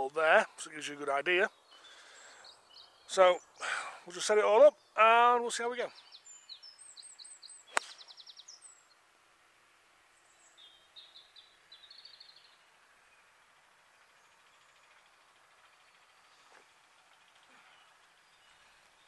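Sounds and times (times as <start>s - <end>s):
small birds chirping: 0.0s - 9.2s, 10.0s - 19.0s
faint outdoor background: 0.0s - 19.0s.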